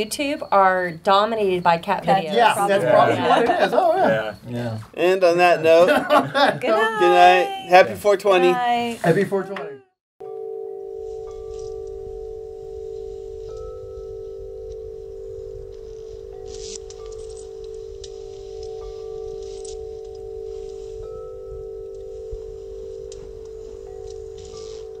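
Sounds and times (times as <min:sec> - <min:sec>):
soft chime tones: 0:00.0 - 0:04.8, 0:10.2 - 0:25.0
faint crackles: 0:15.6 - 0:21.0, 0:21.9 - 0:25.0.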